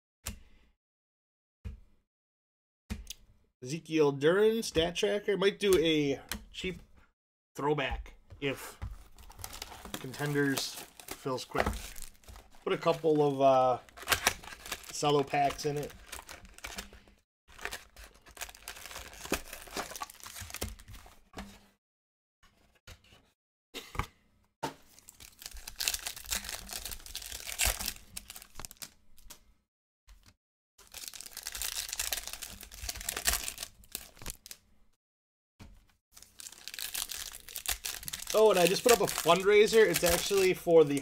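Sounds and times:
packaging crinkling: 8.9s - 20.8s, 24.9s - 29.3s, 30.8s - 34.6s, 36.2s - 41.0s.

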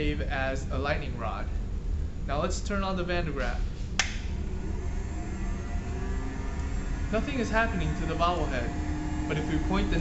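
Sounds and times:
motor humming with faint whine: 0.0s - 10.0s
switch click: 4.0s - 4.3s.

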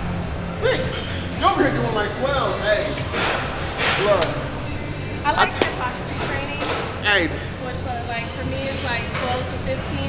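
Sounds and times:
people talking and vocalising: 0.0s - 10.0s.

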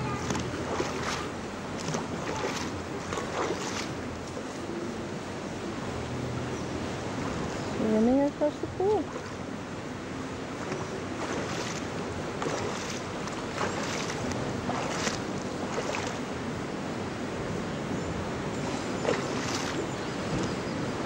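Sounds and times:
pool water sloshing: 0.0s - 4.6s, 7.2s - 16.6s, 18.4s - 20.6s.

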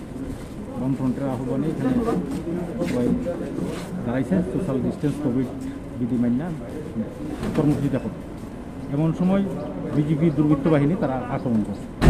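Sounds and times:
man speaking: 0.8s - 8.2s, 8.9s - 11.9s.

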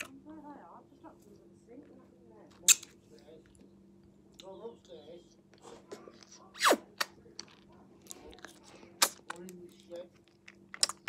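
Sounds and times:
wet sucking clicks and smacks: 6.6s - 9.6s.

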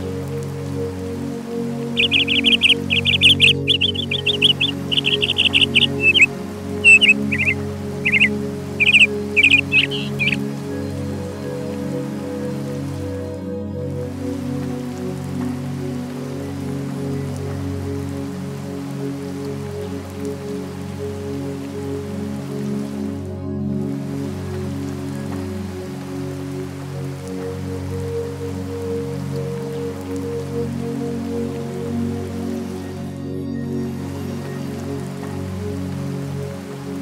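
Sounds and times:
soft ambient music: 0.0s - 37.0s
steady rain: 0.0s - 37.0s.

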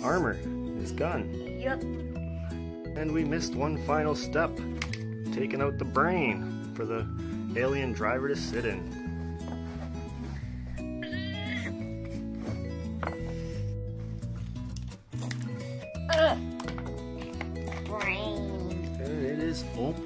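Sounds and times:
background music with low notes: 0.0s - 20.0s.

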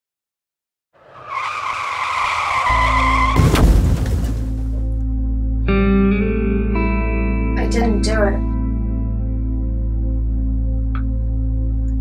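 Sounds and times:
car tyres screeching: 1.0s - 4.8s
loud crash: 1.8s - 5.0s.

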